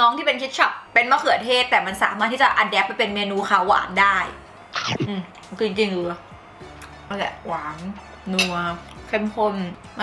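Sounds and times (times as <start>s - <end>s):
woman talking: 0.0s - 4.4s, 5.0s - 6.2s, 7.1s - 9.8s.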